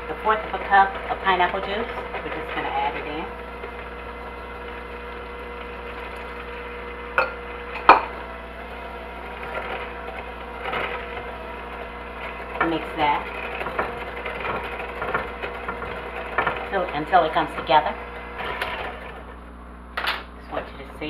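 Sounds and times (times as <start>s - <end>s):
electric hand mixer running: 0.0s - 19.9s.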